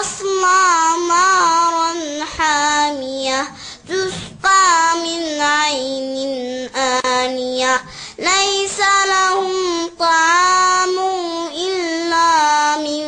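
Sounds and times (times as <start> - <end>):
girl reciting melodically: 0.0 - 13.0.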